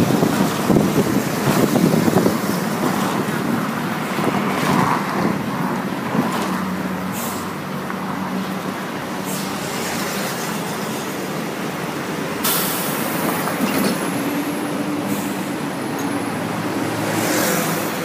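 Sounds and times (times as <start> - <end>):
bus engine hum: 0.0 - 18.0
road noise: 0.0 - 18.0.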